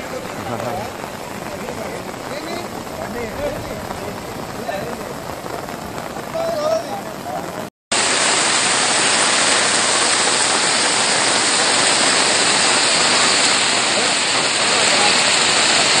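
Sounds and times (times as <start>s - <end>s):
heavy rain on standing water: 0.0s - 16.0s.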